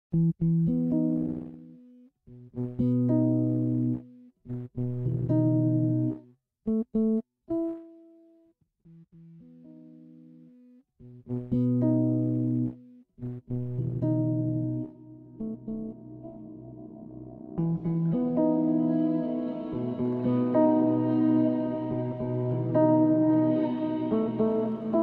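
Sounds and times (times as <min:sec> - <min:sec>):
lo-fi instrumental chords: 0:00.2 - 0:01.7, 0:02.6 - 0:06.2, 0:11.3 - 0:25.0.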